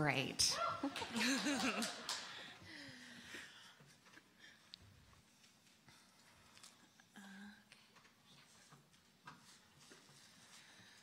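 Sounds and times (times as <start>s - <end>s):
person laughing: 0.8s - 2.2s.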